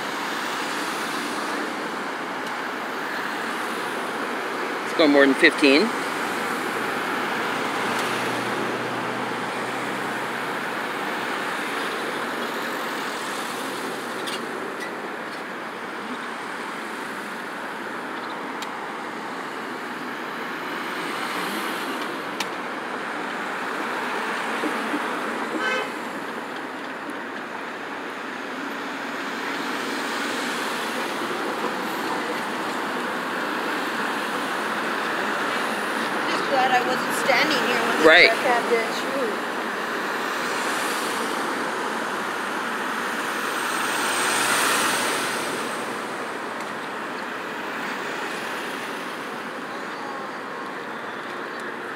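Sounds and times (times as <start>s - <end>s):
road traffic: 0.0s - 51.9s.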